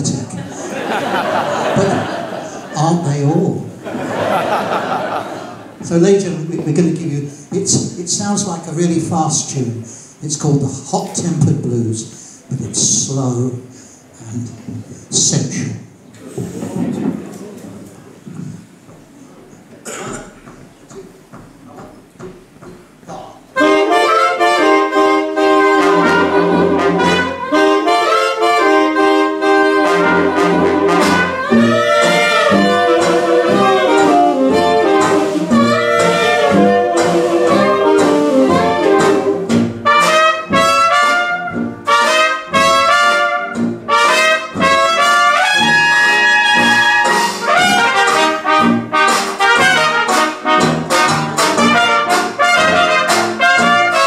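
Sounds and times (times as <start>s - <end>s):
jazz band playing: 0.0s - 9.4s, 22.4s - 54.0s
lead trumpet: 23.6s - 54.0s.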